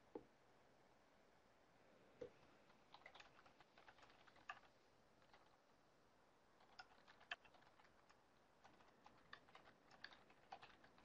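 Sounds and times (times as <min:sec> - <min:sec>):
computer keyboard typing: 0:02.3 - 0:05.6, 0:06.6 - 0:11.0.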